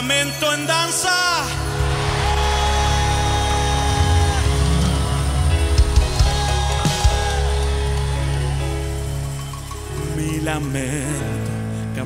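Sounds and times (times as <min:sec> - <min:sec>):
held chords: 0:00.7 - 0:12.0
drums: 0:01.4 - 0:10.2
deep bass: 0:01.5 - 0:12.0.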